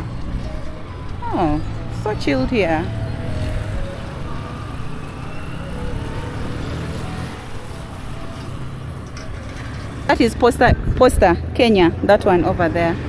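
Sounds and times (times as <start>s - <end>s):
road noise: 0.0s - 13.0s
vehicle engine running: 0.0s - 13.0s
wind noise: 0.0s - 13.0s.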